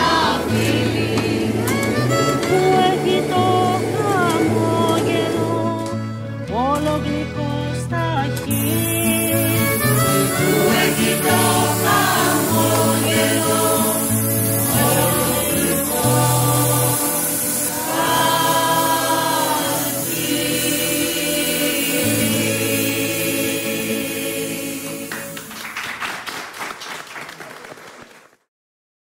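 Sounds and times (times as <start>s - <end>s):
choir singing: 0.0s - 6.2s, 8.5s - 25.5s
orchestra playing: 0.0s - 6.5s, 8.5s - 13.6s
applause: 25.1s - 28.5s.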